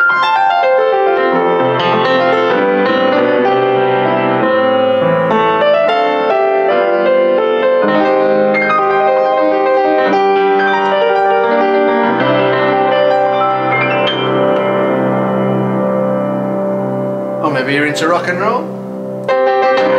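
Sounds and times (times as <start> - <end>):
piano playing: 0.0 - 19.9.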